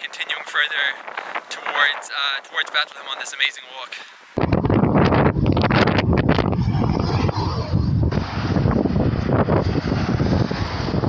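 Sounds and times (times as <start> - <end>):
wind buffeting microphone: 0.0 - 3.6, 4.3 - 11.0
traffic passing: 6.5 - 11.0.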